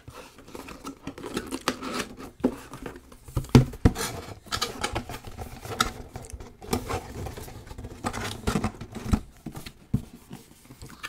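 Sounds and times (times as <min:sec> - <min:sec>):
cardboard scraping and tapping: 0:00.6 - 0:11.0.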